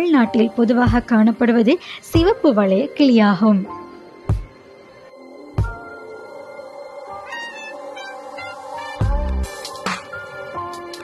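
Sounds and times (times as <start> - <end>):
background music with steady tones: 0.0 - 11.0
parakeet calling: 6.7 - 9.8.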